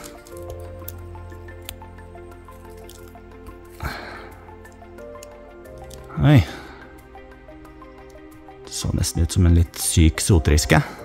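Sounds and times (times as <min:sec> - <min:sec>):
rustle of moss and twigs: 0:00.0 - 0:06.1
background music with held notes: 0:00.0 - 0:11.0.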